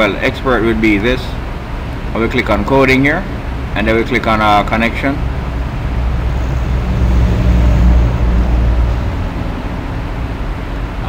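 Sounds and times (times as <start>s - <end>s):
low vehicle rumble: 0.0s - 11.0s.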